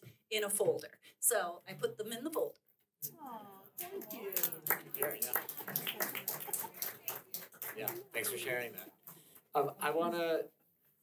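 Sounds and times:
indistinct voices in a hall: 3.0 - 10.5.

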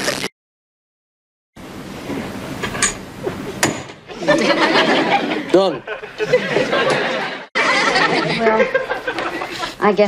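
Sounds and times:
studio audience laughing: 4.1 - 9.8.

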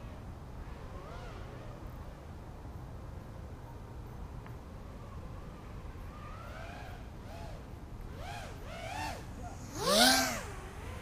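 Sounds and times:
quadcopter motors whining: 5.0 - 11.0.

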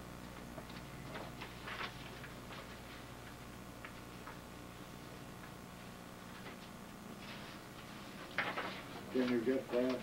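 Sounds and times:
steady low hum: 0.0 - 10.0
paper sheets rustling: 1.0 - 3.1, 6.5 - 10.0.

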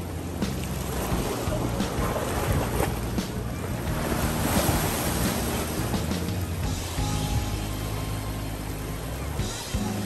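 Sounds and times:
ocean surf washing: 0.0 - 10.0
quiet background music: 0.0 - 10.0.

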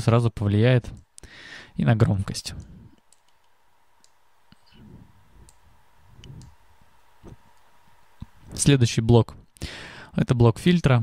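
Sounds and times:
computer mouse clicks: 2.6 - 4.2, 5.4 - 5.6, 6.2 - 6.6.

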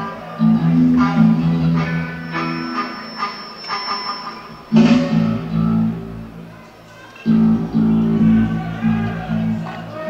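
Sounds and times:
rock band playing live: 0.6 - 6.4
thin steady high tone: 1.7 - 6.2.

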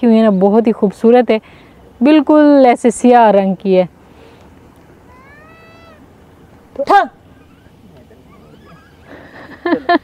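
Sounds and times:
person shouting calls: 5.0 - 6.1.

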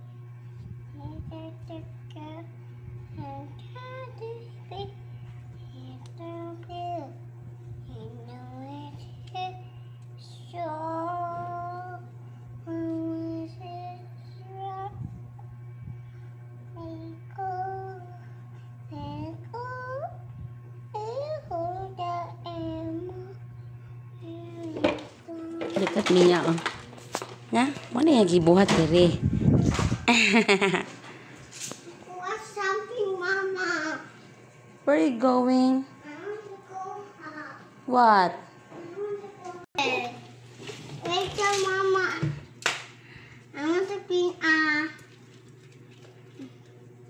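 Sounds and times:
steady low hum: 0.0 - 47.0
girl singing: 0.9 - 15.2, 16.7 - 18.3, 18.9 - 23.5, 24.2 - 25.8.

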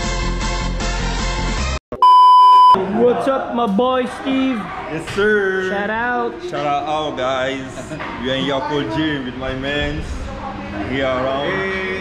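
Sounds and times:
electronic beep: 2.0 - 2.8
men's voices: 2.8 - 10.2, 10.8 - 12.0.

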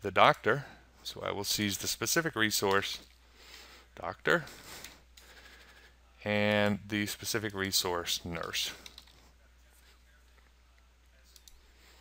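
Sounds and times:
computer mouse clicks: 8.4 - 9.2, 11.3 - 11.6.

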